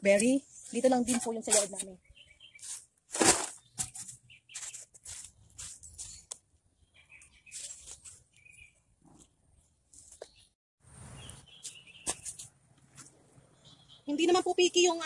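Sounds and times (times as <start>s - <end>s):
soil rustling: 0.0s - 6.4s, 7.4s - 8.5s
shovel scraping: 1.1s - 1.9s, 2.6s - 6.2s
falling soil: 2.6s - 4.0s.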